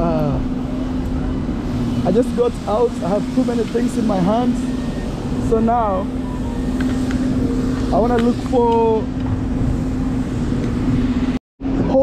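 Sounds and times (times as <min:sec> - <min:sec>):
motor vehicle running: 0:00.0 - 0:11.4.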